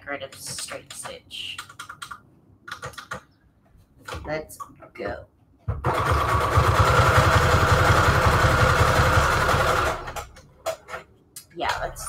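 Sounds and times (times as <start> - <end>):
sewing machine stitching: 5.8 - 10.3.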